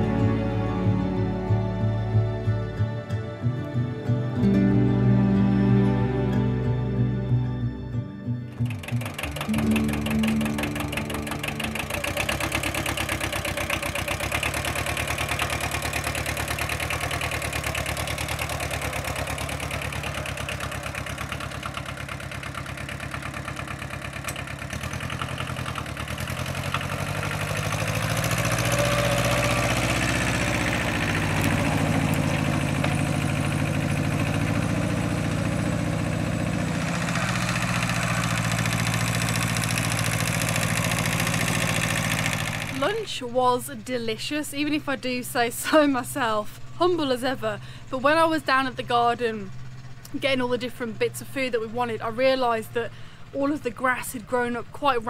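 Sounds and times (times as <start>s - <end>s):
diesel tractor engine running: 0.0s - 55.0s.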